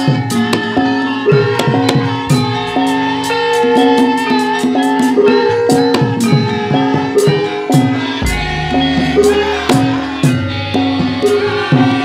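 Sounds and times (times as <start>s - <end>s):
struck metallophone melody: 0.0s - 12.0s
hand drum strokes: 7.3s - 12.0s.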